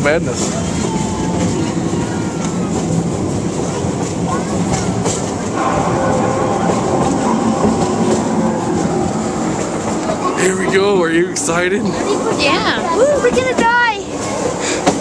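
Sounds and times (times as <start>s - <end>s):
small train rumbling: 0.0s - 15.0s
wheels clicking over rails: 0.0s - 15.0s.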